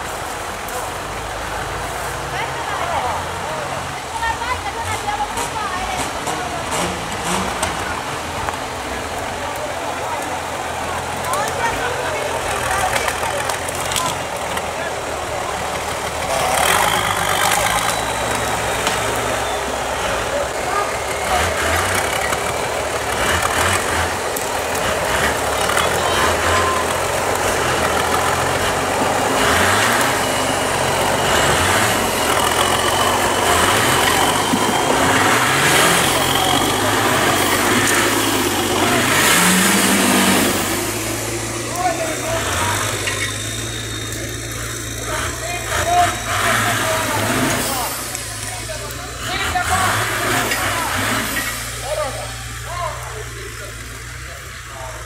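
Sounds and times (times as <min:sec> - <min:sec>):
off-road engine revving: 0:00.0 - 0:55.0
people talking: 0:00.0 - 0:55.0.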